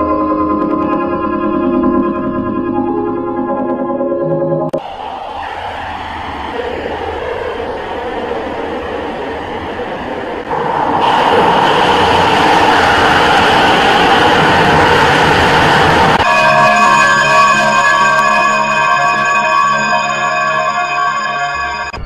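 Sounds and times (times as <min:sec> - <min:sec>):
rushing noisy logo sound: 0:10.2 - 0:22.0.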